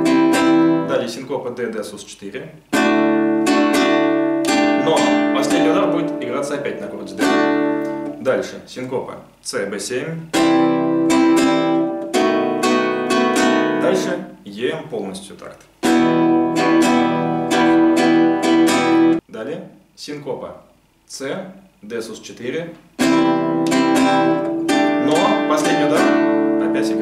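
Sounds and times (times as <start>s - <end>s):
nylon-string guitar strumming: 0.0s - 1.2s, 2.7s - 8.3s, 10.3s - 14.4s, 15.8s - 19.2s, 23.0s - 27.0s.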